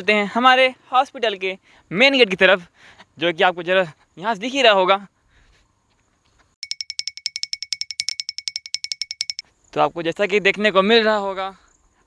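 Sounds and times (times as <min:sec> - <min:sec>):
rapid high-pitched chirps: 0:06.6 - 0:09.4.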